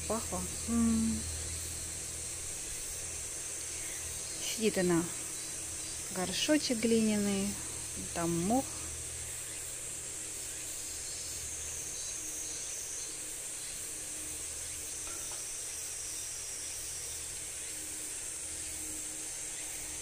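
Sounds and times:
insect chorus drone: 0.0 - 20.0.

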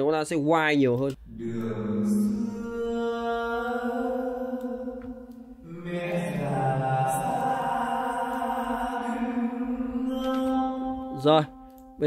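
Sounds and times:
sustained backing chords: 1.2 - 12.0
solo vocal with reverb: 1.4 - 11.2.

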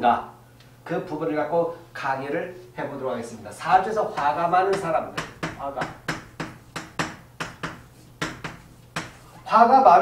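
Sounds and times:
chalk writing on a chalkboard: 3.7 - 9.4.

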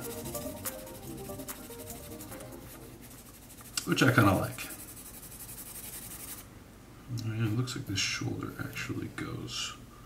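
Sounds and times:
quiet background music: 0.0 - 4.7
pencil scratching on paper: 0.0 - 6.4.

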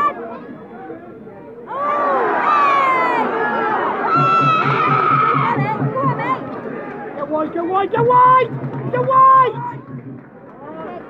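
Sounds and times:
football crowd shouting: 1.6 - 10.0.

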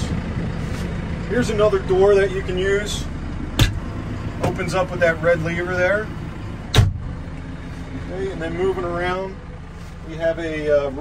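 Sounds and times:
door slamming shut: 6.7 - 7.0.

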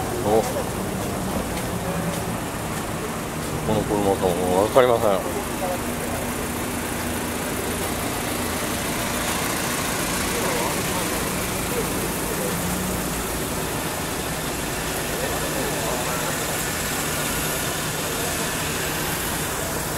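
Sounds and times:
car engine idling: 0.0 - 19.9
faint voices: 0.0 - 19.9
steady background noise: 0.0 - 19.9.

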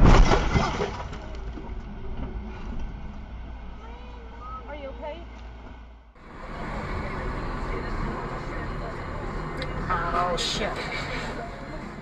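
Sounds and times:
low vehicle rumble: 0.0 - 12.0
street traffic noise: 1.0 - 12.0.

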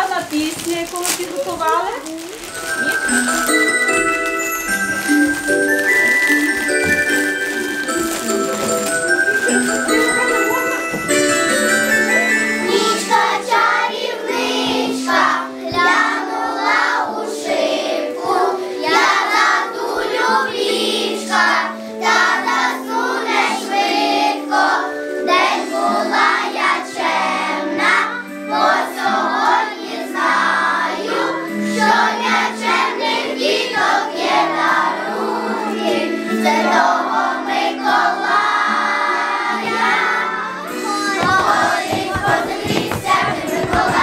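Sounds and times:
instrumental accompaniment: 0.0 - 44.0
children's choir singing: 2.8 - 44.0.

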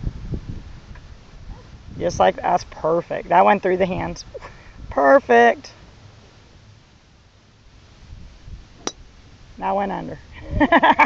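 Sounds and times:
golf club striking ball: 8.8 - 9.1.

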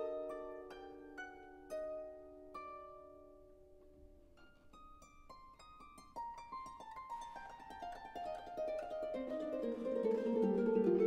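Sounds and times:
orchestra plucked strings: 0.0 - 11.0.

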